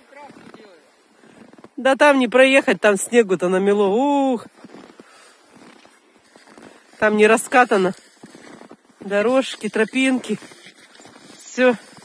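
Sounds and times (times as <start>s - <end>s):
footsteps crunching in snow: 0.0s - 2.7s, 3.6s - 12.0s.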